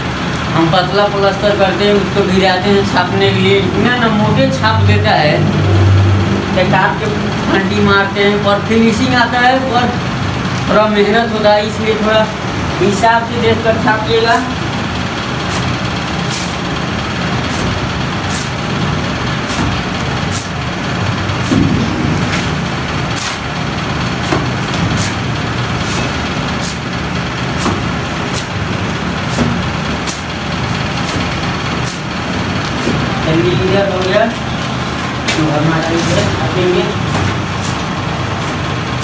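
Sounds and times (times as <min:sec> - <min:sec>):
low machine rumble: 0:00.0 - 0:39.0.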